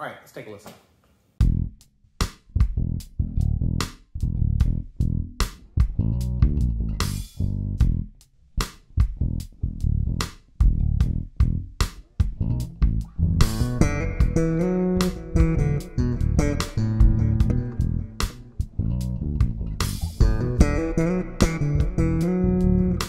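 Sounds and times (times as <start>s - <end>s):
electric bass plucked notes: 1.4s - 1.8s, 2.6s - 8.1s, 9.0s - 23.0s.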